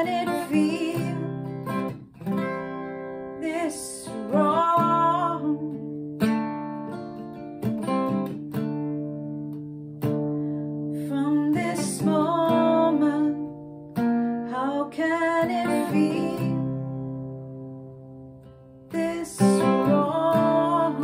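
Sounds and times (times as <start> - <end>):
woman singing: 0.0 - 1.9, 3.3 - 6.0, 10.9 - 17.3, 18.9 - 21.0
acoustic guitar strummed chords: 0.0 - 21.0.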